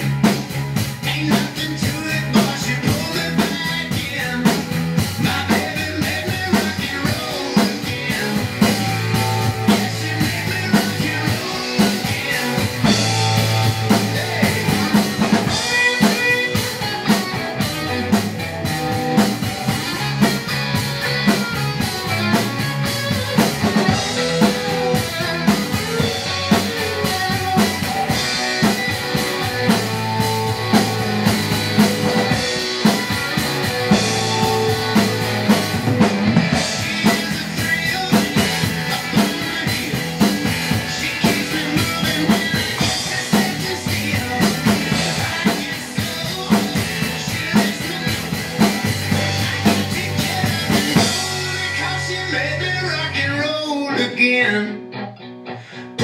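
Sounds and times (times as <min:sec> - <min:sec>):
rock drum kit: 0:00.0 - 0:54.1, 0:54.8 - 0:56.0
rock band recording: 0:00.0 - 0:56.0.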